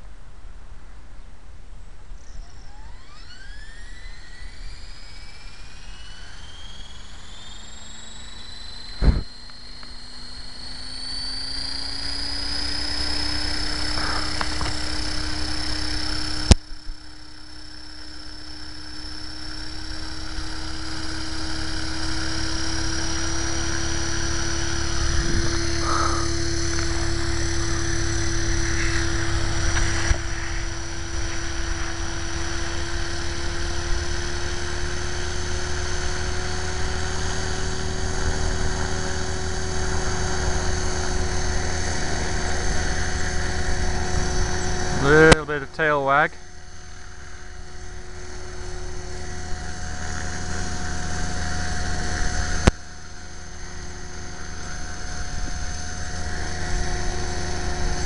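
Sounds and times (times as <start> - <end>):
high motor whine: 0.0 - 58.0
helicopter rotor buzz: 2.2 - 58.0.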